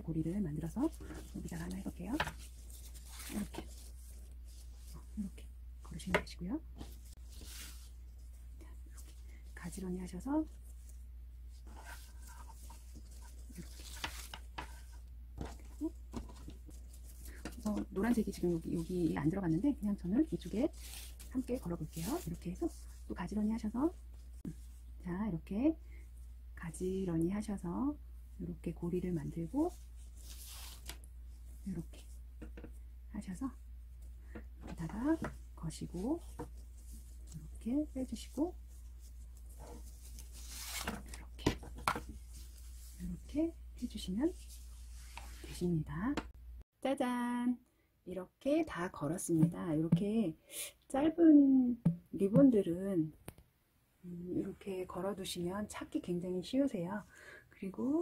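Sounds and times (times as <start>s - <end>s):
ribbons rustling: 0.2s - 6.0s, 6.6s - 25.0s, 29.1s - 32.8s, 33.8s - 45.6s.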